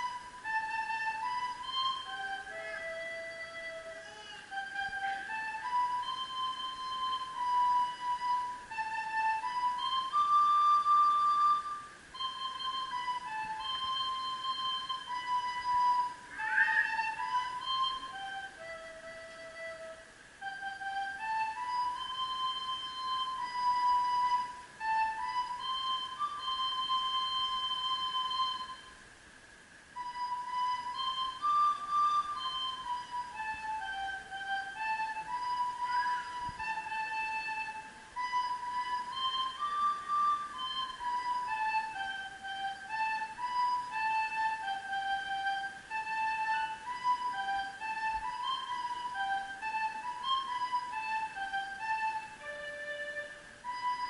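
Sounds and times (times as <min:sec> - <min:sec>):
recorder playing slow melody: 0:00.0 - 0:54.0.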